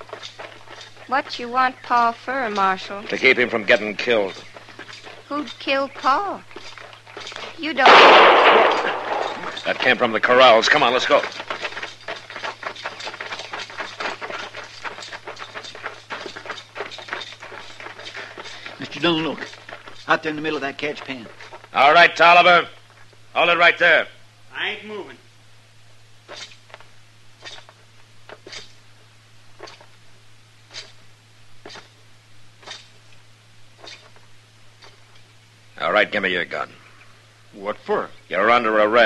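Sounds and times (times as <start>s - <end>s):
footsteps running on dirt: 0.0s - 22.8s
low steady hum: 0.0s - 39.0s.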